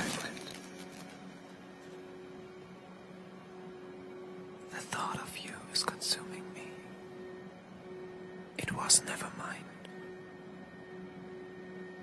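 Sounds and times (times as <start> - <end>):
low steady hum: 0.0 - 12.0
person whispering: 4.7 - 6.9, 8.6 - 9.9.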